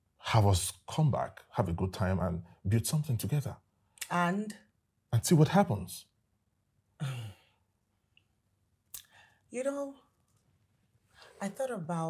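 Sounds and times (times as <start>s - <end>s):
person sighing: 7.0s - 7.6s.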